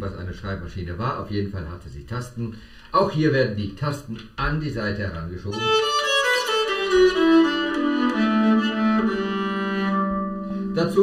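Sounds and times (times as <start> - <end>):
bowed string instrument notes: 5.5 - 11.0.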